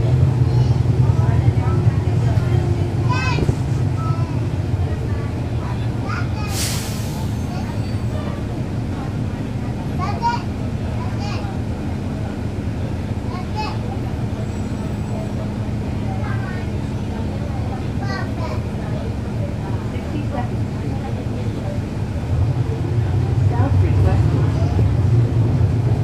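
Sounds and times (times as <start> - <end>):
bus diesel engine hum: 0.0 - 26.0
people talking on bus: 0.0 - 26.0.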